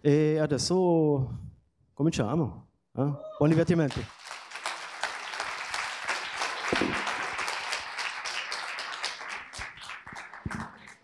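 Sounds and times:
audience applauding: 3.9s - 11.0s.

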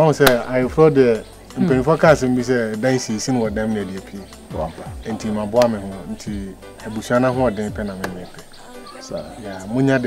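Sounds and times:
background music: 0.0s - 10.0s
pitch-gliding vocal sounds: 1.4s - 2.2s, 2.8s - 10.0s
person speaking: 1.6s - 10.0s.

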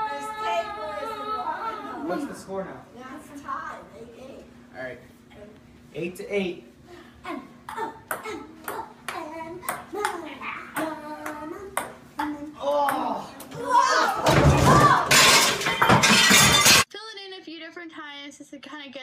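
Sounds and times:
people shouting and shrieking: 0.0s - 2.4s, 12.5s - 15.4s.

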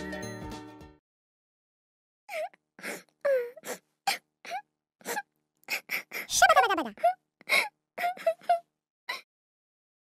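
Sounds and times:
cartoon voice sobbing: 6.2s - 7.2s.

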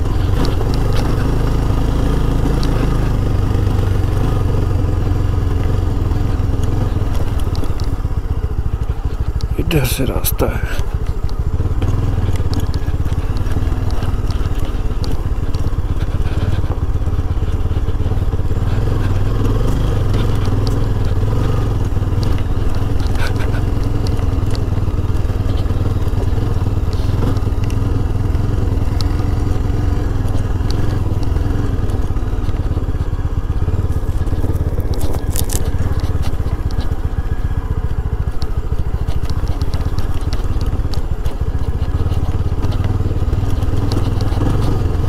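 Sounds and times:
motorcycle engine running: 0.0s - 45.0s
tyres crunching on rough road: 0.0s - 45.0s.

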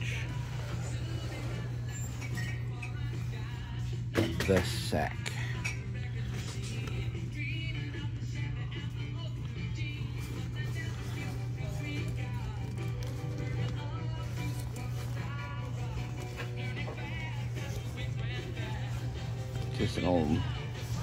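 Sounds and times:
background music with singing: 0.0s - 21.0s.

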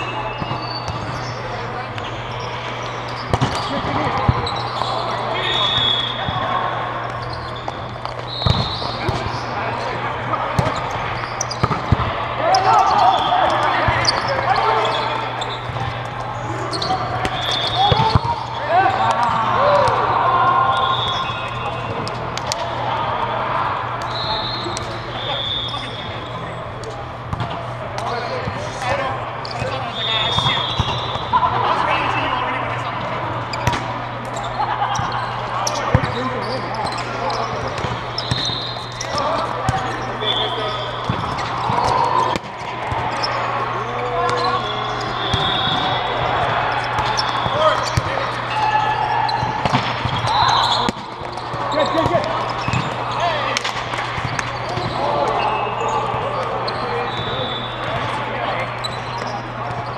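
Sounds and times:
sneaker squeaks on court: 0.0s - 19.5s, 24.1s - 31.3s, 33.0s - 59.9s
balls thudding: 7.6s - 9.4s, 10.5s - 14.5s, 16.8s - 20.0s, 40.7s - 43.1s, 49.4s - 53.0s.

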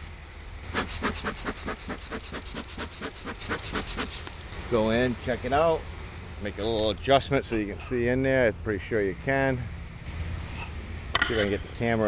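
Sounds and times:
bellows smoker puffing: 0.6s - 4.6s.

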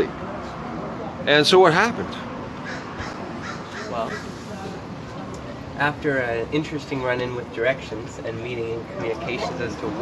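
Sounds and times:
outdoor background noise: 0.0s - 10.0s
bird calling: 2.6s - 4.4s.

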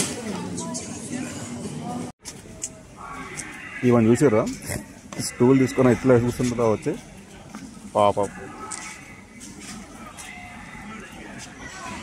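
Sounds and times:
hum of street noise: 0.0s - 12.0s
people talking in the street: 0.0s - 12.0s.

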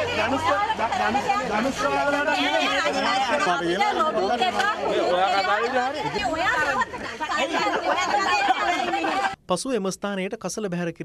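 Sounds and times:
people arguing at once: 0.0s - 9.4s.

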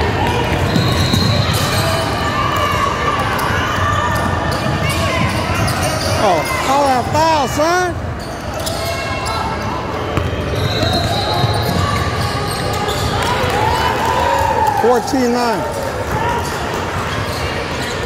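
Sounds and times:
sneakers squeaking: 0.0s - 14.0s, 15.6s - 18.0s
voices in echoing hall: 0.0s - 18.0s.

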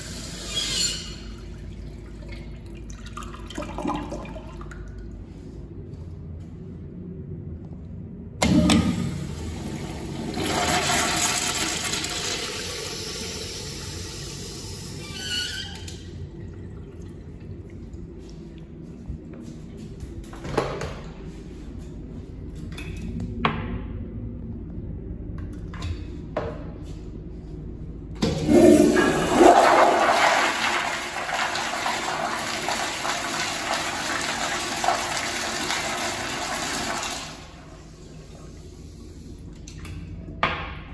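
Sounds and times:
urinal flushing: 0.0s - 5.5s, 8.4s - 19.0s, 28.2s - 39.6s.

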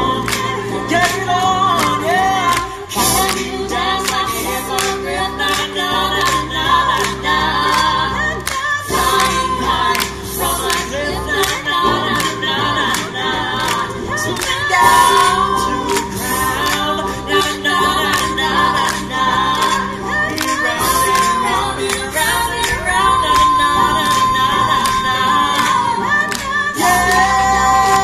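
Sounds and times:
choir singing a cappella: 0.0s - 28.0s.

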